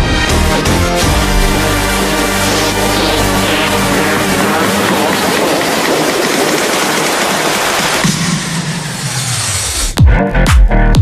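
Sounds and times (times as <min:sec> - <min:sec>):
low sliding tone: 0:00.2 - 0:07.3.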